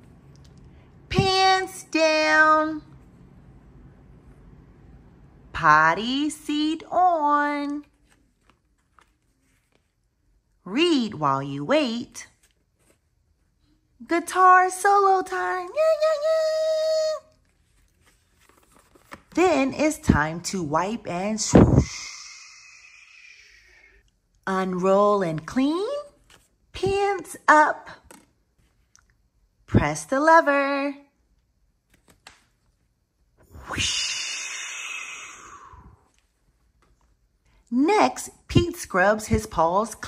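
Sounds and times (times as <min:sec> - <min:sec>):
book pages turning: 0:07.8 - 0:10.3, 0:12.3 - 0:13.5, 0:17.3 - 0:19.4, 0:25.3 - 0:26.7, 0:28.0 - 0:29.1, 0:31.8 - 0:32.9.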